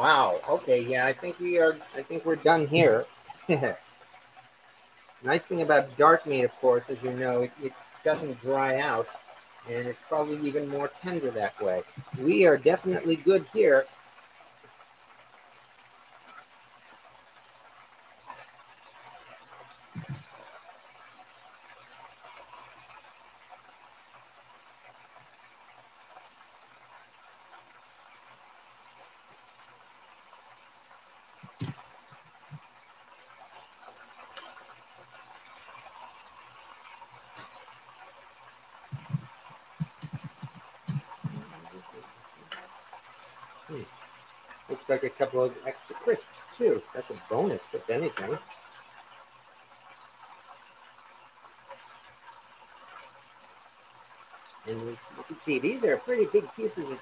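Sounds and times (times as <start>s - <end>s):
oil sizzling: 0.0s - 57.0s.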